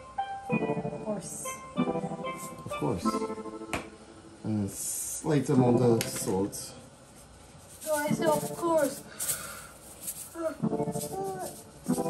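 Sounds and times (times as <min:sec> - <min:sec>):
people talking: 0:04.5 - 0:06.8, 0:07.8 - 0:09.1, 0:10.4 - 0:12.0
spice shaker rattling: 0:07.6 - 0:12.0.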